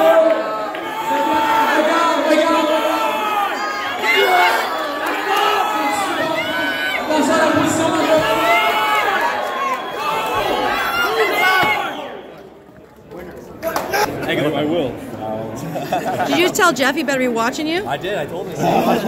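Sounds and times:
crowd shouting and cheering: 0:00.0 - 0:14.3.

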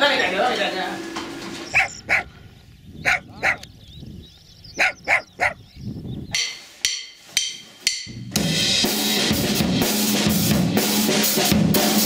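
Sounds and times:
small dog yapping: 0:01.6 - 0:02.3, 0:03.0 - 0:03.7, 0:04.8 - 0:05.6.

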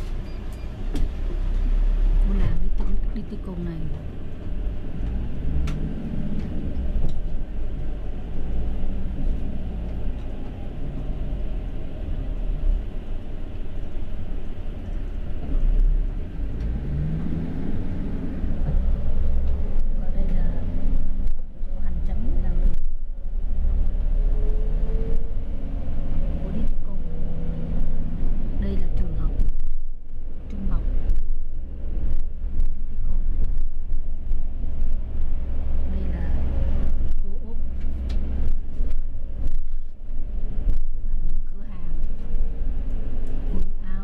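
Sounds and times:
bus engine rumbling: 0:00.0 - 0:44.0.

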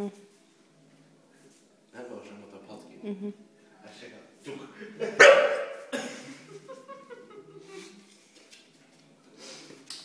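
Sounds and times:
dog barking: 0:05.2 - 0:05.9.

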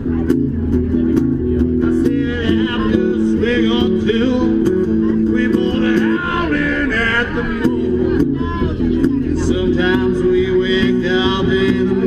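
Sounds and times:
guitar strumming: 0:00.0 - 0:12.0.

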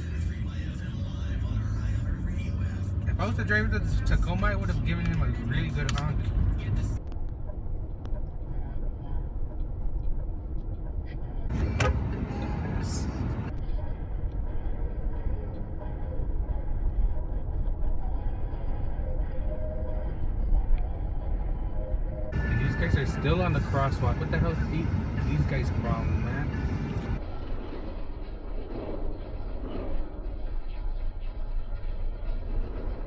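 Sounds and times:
road and engine rumble in car: 0:00.0 - 0:33.0.

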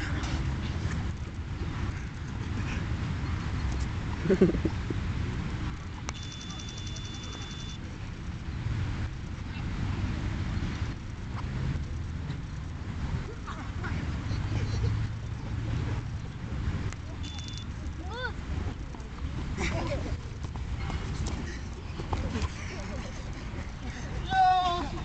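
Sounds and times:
faint voices: 0:00.0 - 0:25.0
steady high tone: 0:06.1 - 0:07.8
short shout: 0:24.2 - 0:25.0.

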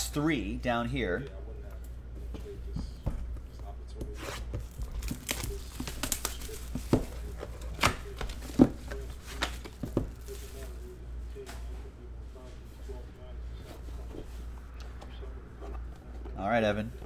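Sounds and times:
plastic wrap crinkling: 0:04.6 - 0:10.9
plastic wrap snapping: 0:04.8 - 0:10.6.

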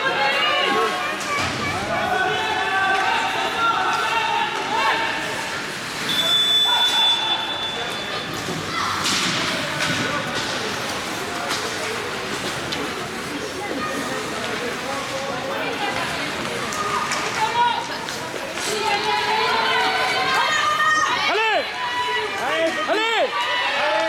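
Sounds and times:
voices of players and spectators: 0:00.0 - 0:24.0.

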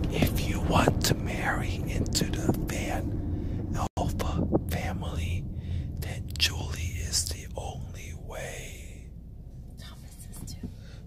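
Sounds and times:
low steady rumble: 0:00.0 - 0:11.0
person whispering: 0:03.8 - 0:05.4, 0:06.0 - 0:09.1, 0:09.8 - 0:10.7.

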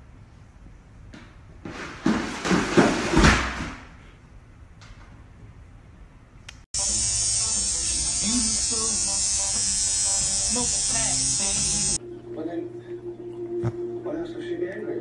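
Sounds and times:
electric toothbrush buzzing: 0:06.8 - 0:12.0.

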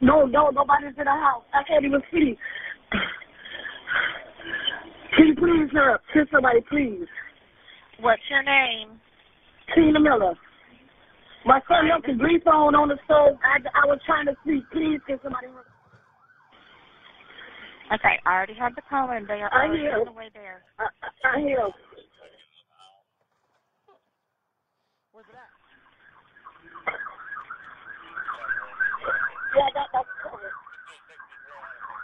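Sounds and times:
faint emergency siren: 0:10.3 - 0:21.0, 0:25.2 - 0:32.0.

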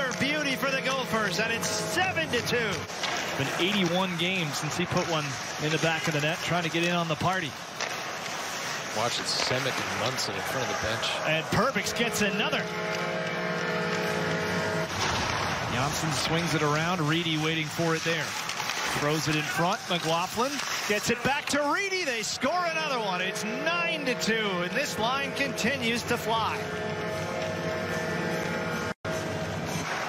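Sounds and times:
arena goal horn: 0:00.0 - 0:07.2, 0:09.1 - 0:15.1, 0:15.7 - 0:30.0
droning held chord: 0:11.6 - 0:14.9, 0:22.8 - 0:29.8.

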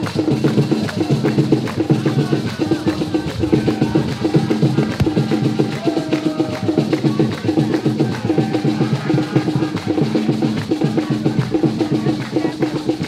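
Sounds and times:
drums playing a fast rhythm: 0:00.0 - 0:13.0.

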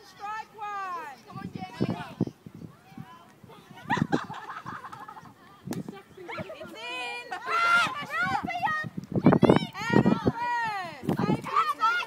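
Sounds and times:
girls calling out: 0:06.0 - 0:12.0.

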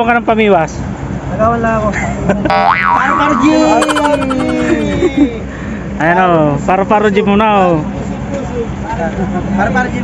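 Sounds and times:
comic boing sound effect: 0:02.5 - 0:05.0
long falling tone: 0:02.5 - 0:05.3.

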